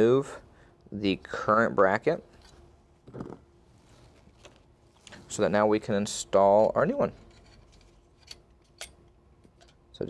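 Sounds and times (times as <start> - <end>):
faint handling sounds: 3.6 - 5.4.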